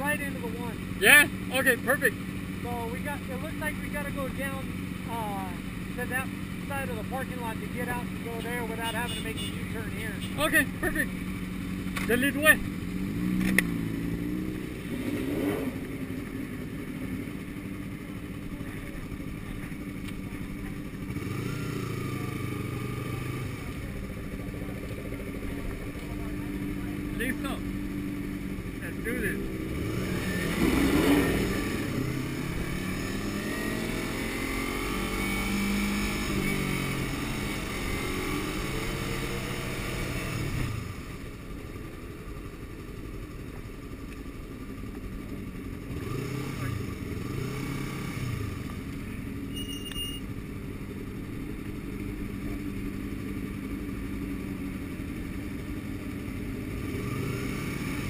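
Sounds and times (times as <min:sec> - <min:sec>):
motorcycle engines revving: 0:00.0 - 0:58.0.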